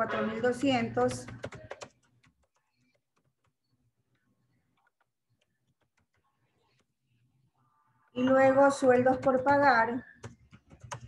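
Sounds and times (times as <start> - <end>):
keyboard typing clicks: 0.4 - 7.0, 8.8 - 11.0.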